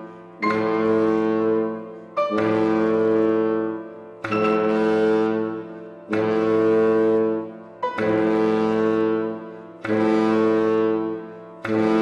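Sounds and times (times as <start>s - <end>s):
bass clarinet low notes: 0.0s - 12.0s
bass trombone low notes: 0.0s - 12.0s.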